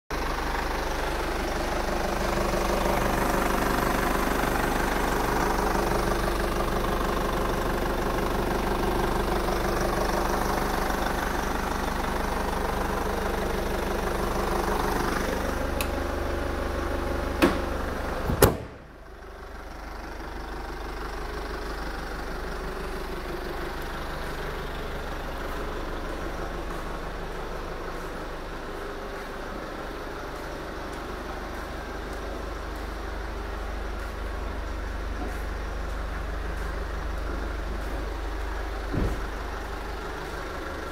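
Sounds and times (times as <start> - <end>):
car engine idling: 0.1 - 40.9.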